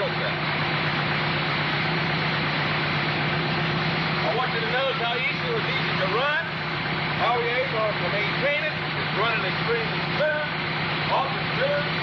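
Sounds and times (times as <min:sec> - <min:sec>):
engine running with low hum: 0:00.0 - 0:12.0.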